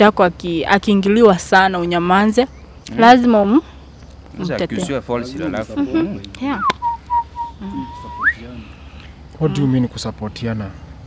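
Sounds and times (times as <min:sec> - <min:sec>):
whistled sliding tone: 0:06.5 - 0:08.4.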